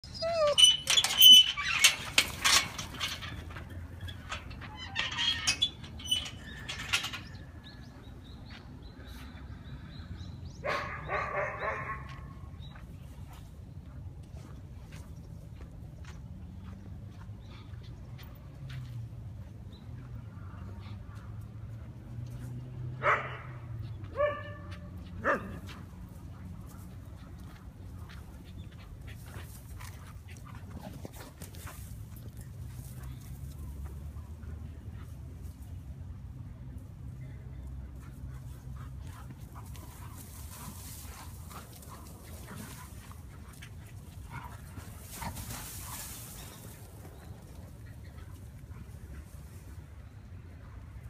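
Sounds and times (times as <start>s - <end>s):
dog barking: 10.6s - 12.2s, 23.0s - 23.6s, 24.2s - 25.6s
rustling and scuffing in leaves: 44.7s - 47.2s.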